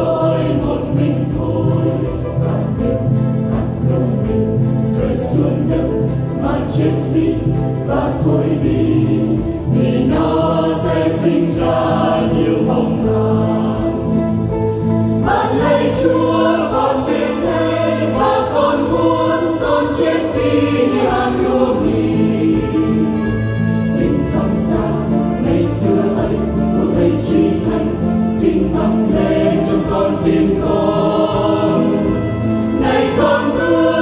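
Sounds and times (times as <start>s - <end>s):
church choir singing a hymn: 0.0s - 34.0s
instrumental accompaniment: 0.0s - 34.0s.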